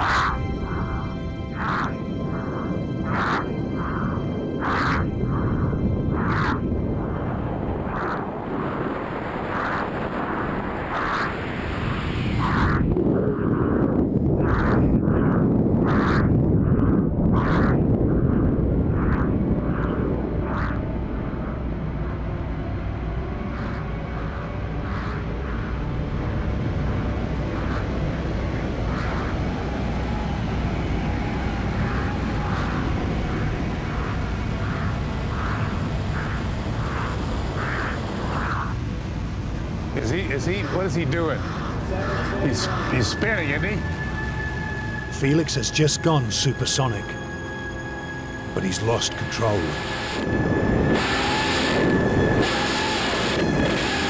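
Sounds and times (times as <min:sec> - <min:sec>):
rushing airflow rumble: 0:00.0 - 0:54.0
soft regular pulsing: 0:00.0 - 0:54.0.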